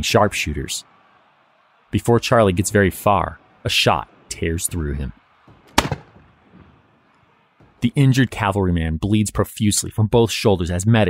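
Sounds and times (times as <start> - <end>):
gunshot crack: 5.7 - 6.2.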